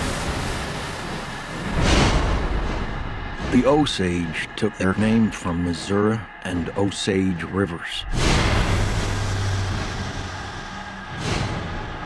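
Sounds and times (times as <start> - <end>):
low steady drone: 0.0 - 12.0
rushing whoosh: 8.0 - 12.0.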